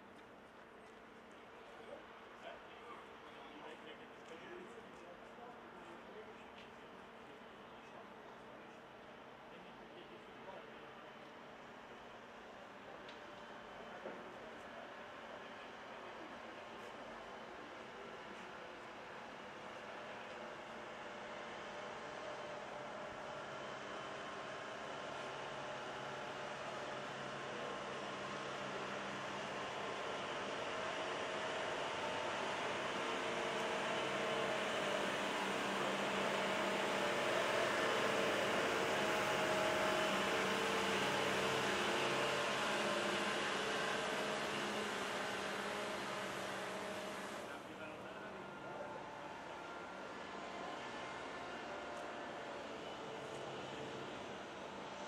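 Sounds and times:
vehicle engine running: 28.3s - 47.6s.

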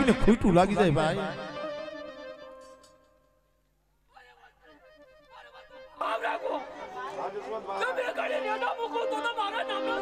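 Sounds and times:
people talking and shouting: 5.3s - 10.0s
man shouting loudly: 7.6s - 10.0s.

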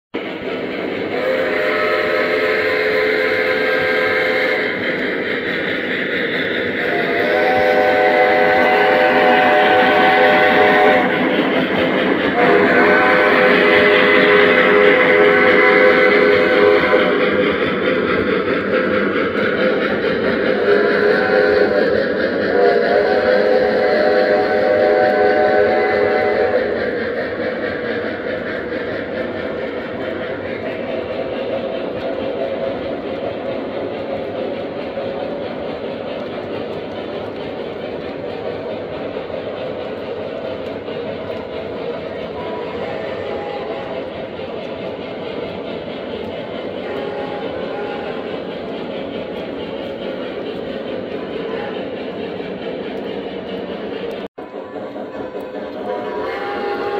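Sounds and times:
train wheels rumbling on rails: 0.1s - 56.9s
model locomotive sound tones: 0.4s - 56.9s.

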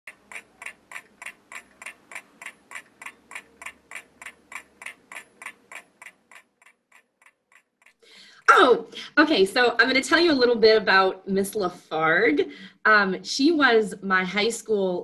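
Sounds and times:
clock ticking: 0.1s - 8.7s.

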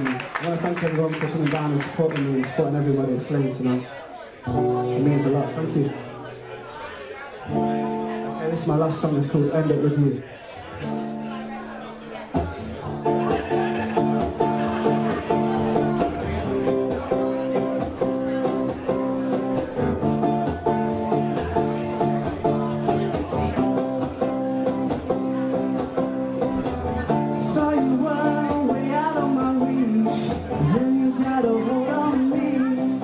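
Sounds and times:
acoustic guitar strumming: 4.5s - 10.0s, 10.7s - 33.0s
man singing: 27.3s - 33.0s.

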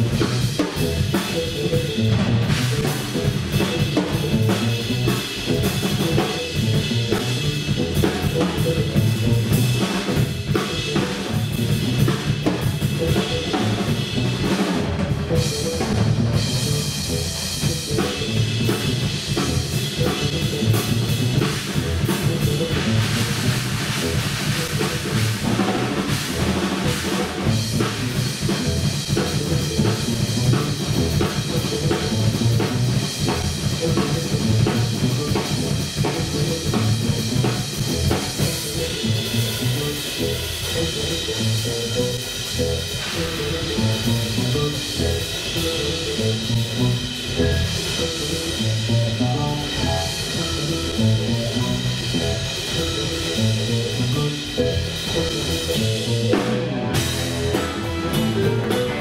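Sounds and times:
drum kit playing: 0.0s - 59.0s
electric bass line: 0.0s - 59.0s
pitched instrument parts: 0.0s - 59.0s.

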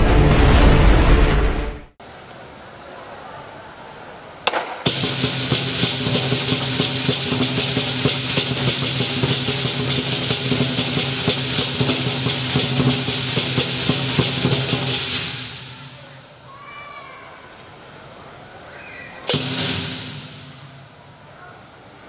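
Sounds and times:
big drum beaten fast: 4.6s - 16.0s, 19.3s - 21.0s
clashing cymbals: 4.8s - 16.2s, 19.3s - 21.2s.

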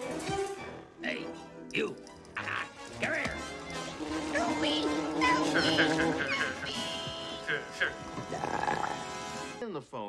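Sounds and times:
sustained music drone: 3.6s - 7.8s
man laughing: 5.5s - 6.8s.

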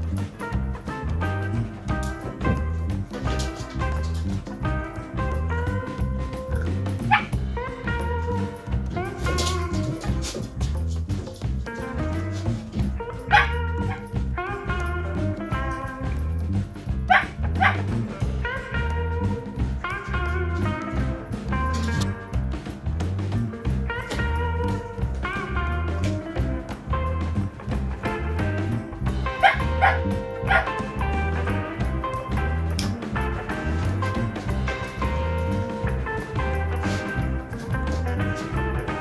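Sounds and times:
background music: 0.0s - 39.0s
puppy yipping: 6.6s - 7.4s, 13.3s - 14.1s, 17.1s - 17.8s, 29.4s - 30.8s.

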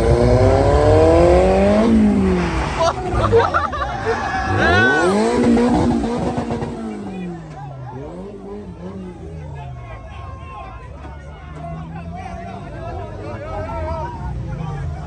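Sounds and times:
car engine revving: 0.0s - 9.8s
crowd shouting: 2.8s - 15.0s.

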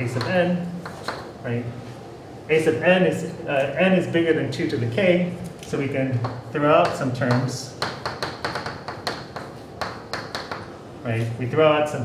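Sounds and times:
chalk tapping on blackboard: 0.1s - 1.3s, 6.2s - 10.7s.

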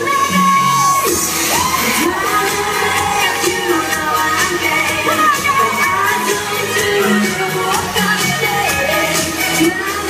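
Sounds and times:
crowd noise: 0.0s - 10.0s
live pop music: 0.0s - 10.0s
woman singing: 0.0s - 10.0s.

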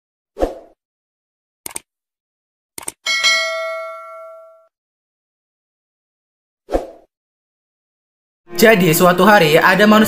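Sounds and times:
bright bell ding: 3.1s - 4.7s.

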